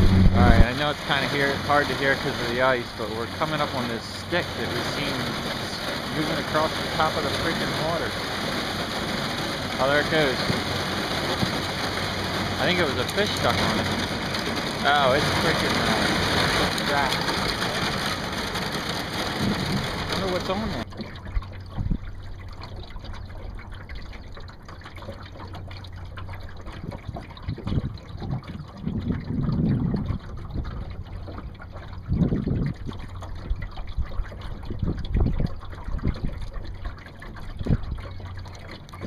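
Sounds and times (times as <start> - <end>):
steady low hum: 0.0 - 39.0
water lapping against boat hull: 0.0 - 39.0.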